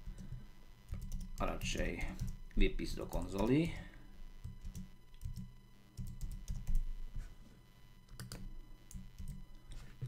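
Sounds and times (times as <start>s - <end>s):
computer keyboard typing: 0.0s - 3.8s, 4.4s - 6.9s, 8.1s - 9.4s.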